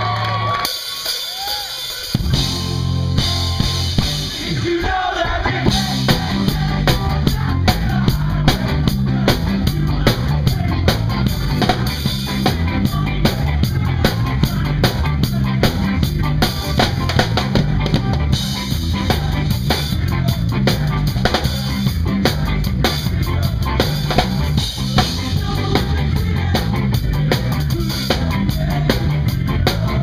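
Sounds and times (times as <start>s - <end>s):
drum kit: 0.0s - 30.0s
electric guitar: 0.0s - 30.0s
keyboard: 0.0s - 30.0s
electric bass: 1.4s - 30.0s.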